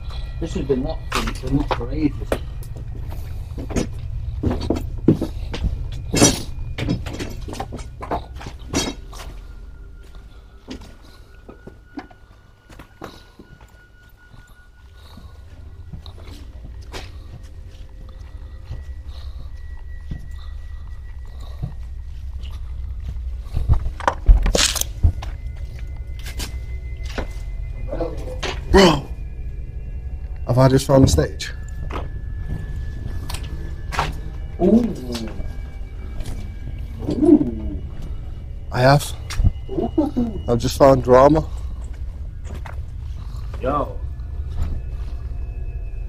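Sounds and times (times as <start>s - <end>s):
footsteps on debris-strewn floor: 0.0s - 29.5s, 40.5s - 46.0s.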